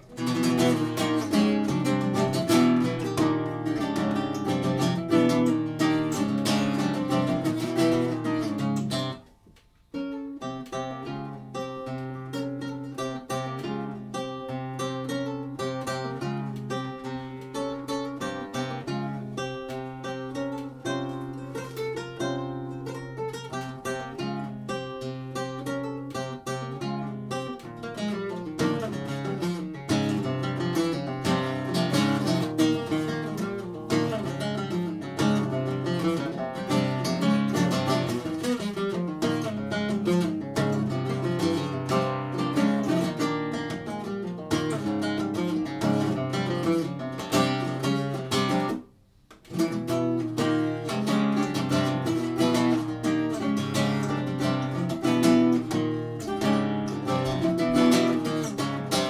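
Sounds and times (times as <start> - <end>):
nylon-string acoustic guitar: 0.0 - 59.0.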